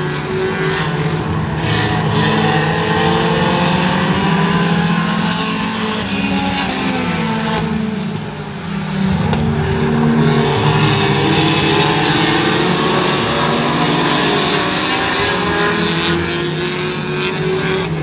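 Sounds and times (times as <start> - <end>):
race car engines: 0.0 - 18.0.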